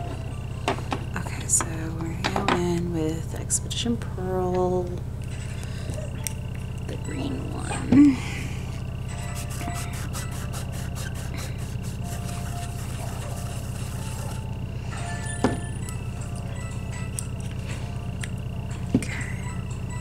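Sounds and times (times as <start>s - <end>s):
low electrical hum: 0.0s - 20.0s
polish scraped across metal plate: 9.2s - 14.4s.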